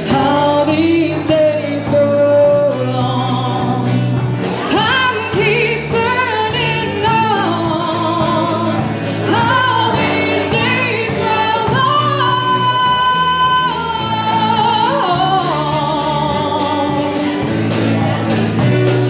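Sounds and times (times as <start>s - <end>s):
acoustic guitar: 0.0s - 19.0s
electric bass: 0.0s - 19.0s.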